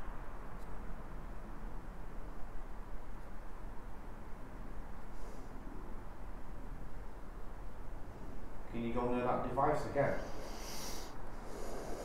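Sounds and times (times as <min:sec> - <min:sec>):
man speaking: 0:08.7 - 0:10.3
breath through the nose: 0:10.2 - 0:12.0.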